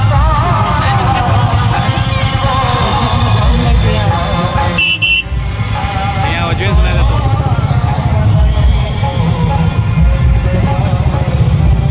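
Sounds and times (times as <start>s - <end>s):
crowd of voices: 0.0s - 11.9s
motorcycle and car engines: 0.0s - 11.9s
vehicle horn toot: 1.5s - 5.9s.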